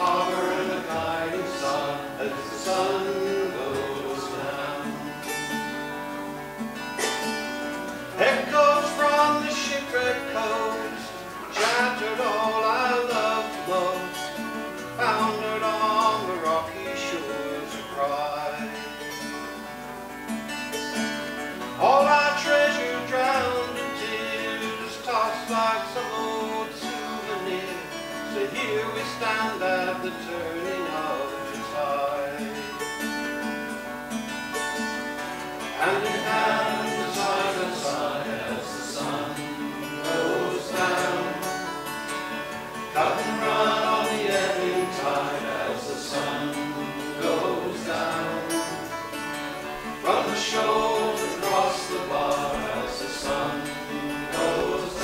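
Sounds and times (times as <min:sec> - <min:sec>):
acoustic guitars strumming chords: 0:00.0 - 0:55.0.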